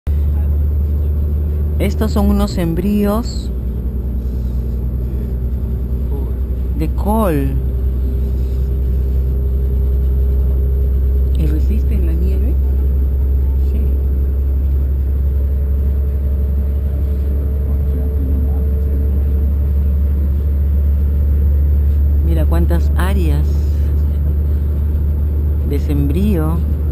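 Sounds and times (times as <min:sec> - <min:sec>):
car driving rumble: 0:00.0 - 0:26.9
faint steady hum: 0:00.1 - 0:26.9
person speaking: 0:01.8 - 0:03.5, 0:06.1 - 0:07.7, 0:11.4 - 0:12.7, 0:22.2 - 0:24.0, 0:25.6 - 0:26.7.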